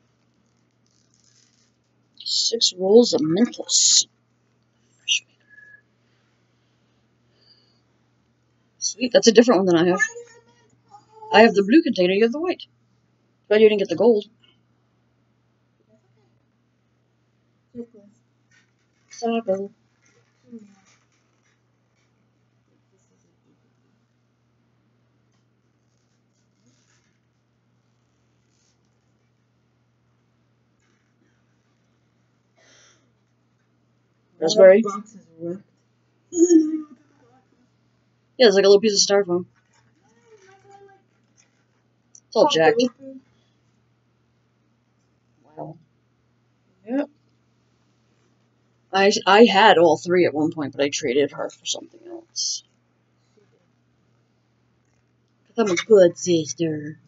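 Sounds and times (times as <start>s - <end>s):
paper wrapper rustling: 0.1s - 2.0s, 19.9s - 22.2s.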